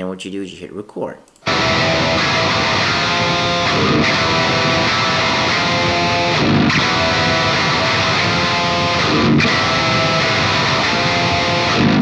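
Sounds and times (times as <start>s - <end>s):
electric guitar riff: 1.4s - 12.0s.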